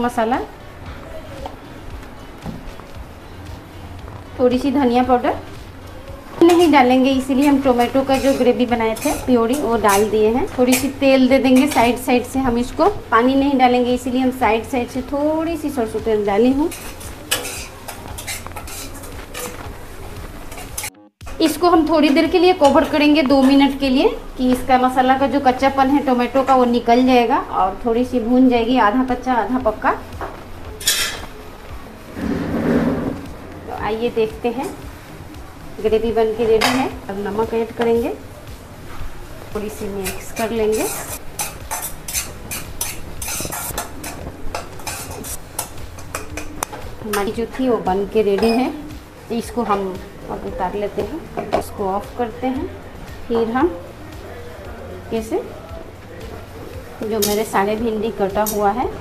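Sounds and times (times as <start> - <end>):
metal spatula scraping a pot: 6.5 - 12.1, 16.6 - 19.6, 32.1 - 33.3, 39.9 - 46.6.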